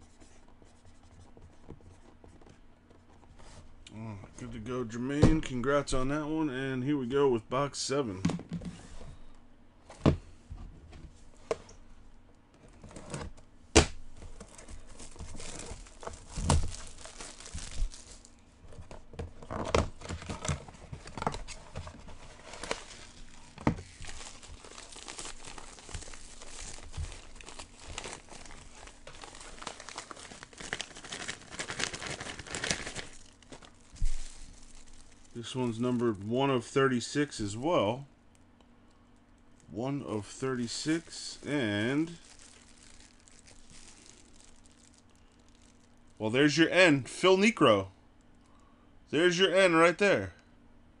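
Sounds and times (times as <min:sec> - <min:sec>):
plastic bag crinkling: 0:14.1 - 0:36.3, 0:40.3 - 0:46.2
plastic packaging crinkling and tearing: 0:14.1 - 0:36.6, 0:39.2 - 0:46.2.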